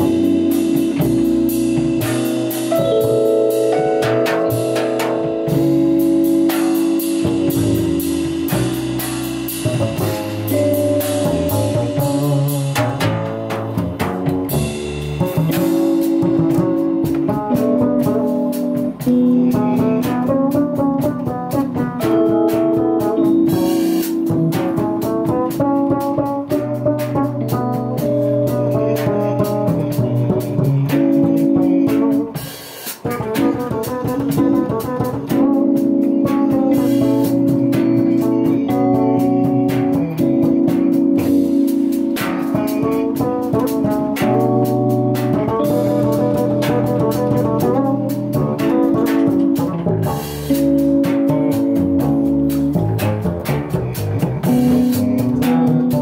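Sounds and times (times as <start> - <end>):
drum kit and cymbals: 0.0 - 56.0
electric piano chords: 0.0 - 56.0
walking double bass: 0.0 - 56.0.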